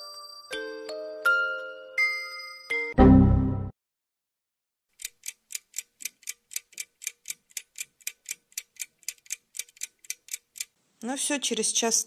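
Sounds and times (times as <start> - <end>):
clock ticking quickly: 5.0 - 10.8.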